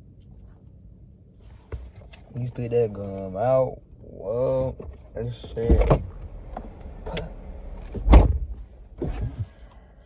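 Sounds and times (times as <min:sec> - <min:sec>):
soft hiss: 0:00.0 - 0:03.7
low rumble inside car cabin: 0:00.0 - 0:10.0.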